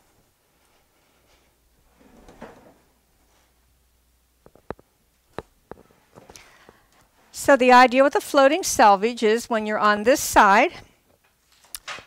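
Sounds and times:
soft rustle: 0.1 - 3.6.

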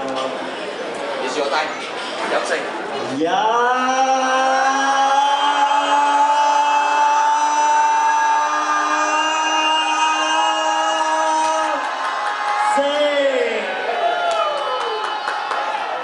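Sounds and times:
man shouting through microphone: 3.1 - 11.8.

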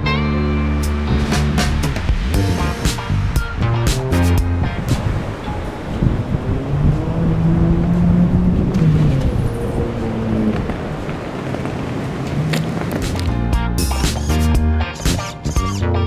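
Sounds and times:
background music: 0.0 - 5.8, 13.0 - 16.0.

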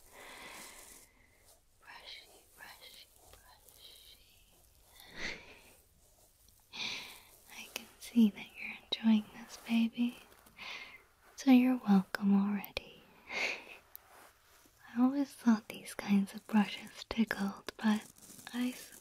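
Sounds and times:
brush strokes on microphone: 0.0 - 19.0
woman whispering: 1.8 - 5.8, 6.7 - 13.8, 14.8 - 19.0.

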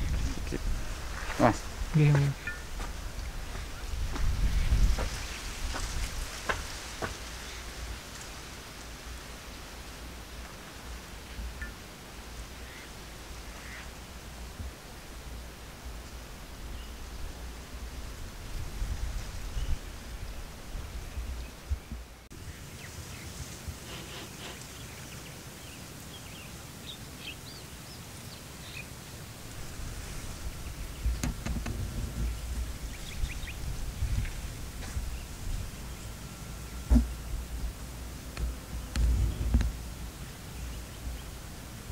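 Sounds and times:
wind rumbling on microphone: 0.0 - 24.6, 29.2 - 41.9.

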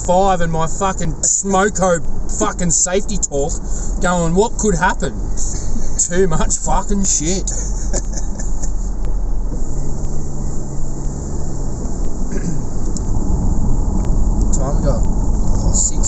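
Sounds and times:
road and engine rumble in car: 0.0 - 16.0.

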